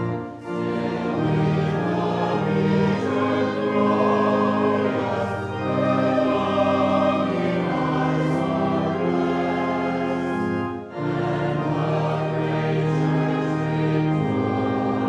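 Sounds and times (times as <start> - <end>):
congregation singing a hymn: 0.0 - 15.0
organ accompaniment: 0.0 - 15.0.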